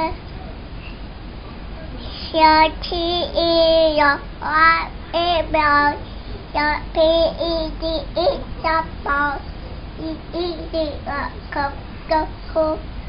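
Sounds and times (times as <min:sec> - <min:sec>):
toddler singing: 0:02.3 - 0:06.0, 0:06.6 - 0:09.4, 0:10.0 - 0:12.8.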